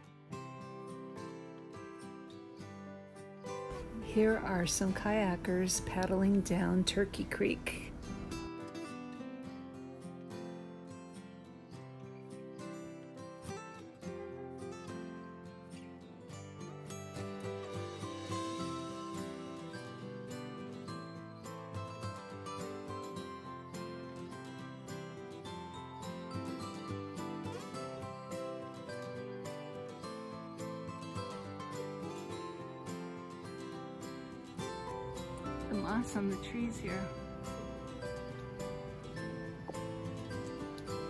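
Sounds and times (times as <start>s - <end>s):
acoustic guitar music: 0.0s - 41.0s.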